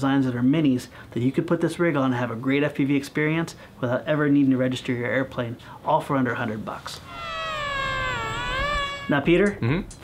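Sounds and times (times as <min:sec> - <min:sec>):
model airplane motor whine: 0:07.1 - 0:09.1.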